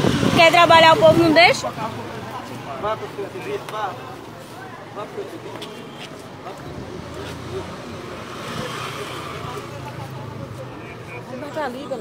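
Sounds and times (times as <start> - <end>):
faint voices: 0.0 - 12.0
road noise: 0.0 - 12.0
vehicle engine passing: 6.4 - 12.0.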